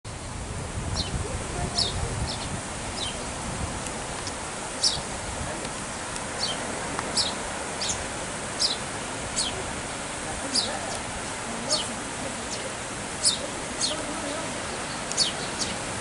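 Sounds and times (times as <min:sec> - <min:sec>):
steady background hiss: 0:00.1 - 0:16.0
songbird chirping: 0:01.0 - 0:03.5, 0:04.2 - 0:05.1, 0:06.2 - 0:09.7, 0:10.4 - 0:11.1, 0:11.7 - 0:16.0.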